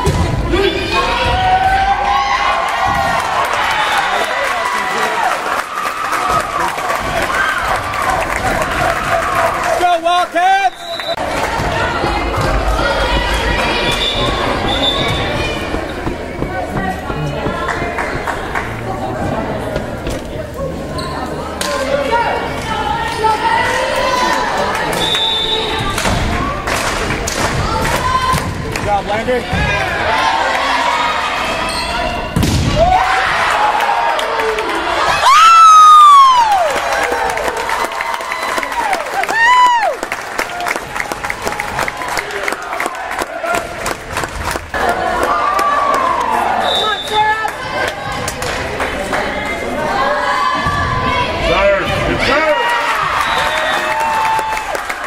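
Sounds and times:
crowd cheering and shouting: 0.0s - 55.0s
volleyball hits and thuds: 32.4s - 32.9s.

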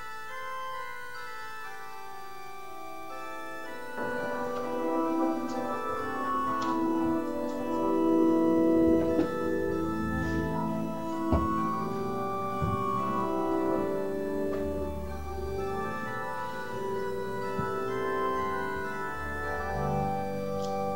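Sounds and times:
organ playing hymn chords: 0.0s - 20.9s.

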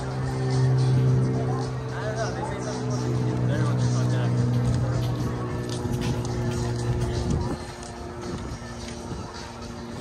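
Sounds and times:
loud steady low hum: 0.0s - 10.0s
passersby's voices: 0.0s - 10.0s.

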